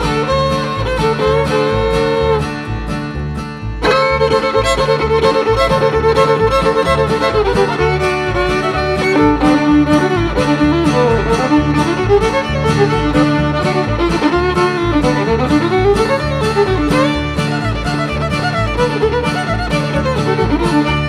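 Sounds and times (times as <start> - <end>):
fiddle playing: 0.0 - 21.0
low bass notes: 0.0 - 21.0
strummed chords: 0.0 - 21.0.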